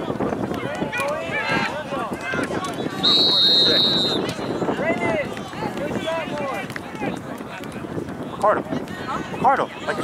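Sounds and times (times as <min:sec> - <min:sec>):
voices calling: 0:00.6 - 0:07.6
referee's whistle blast: 0:03.0 - 0:04.3.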